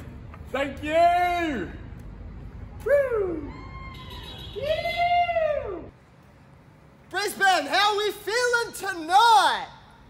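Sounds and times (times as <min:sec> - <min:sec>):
person whooping: 0:02.8 - 0:05.9.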